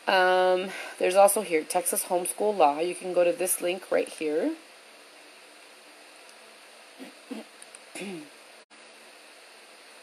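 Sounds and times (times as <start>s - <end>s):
person murmuring hmm: 7.0s - 8.3s.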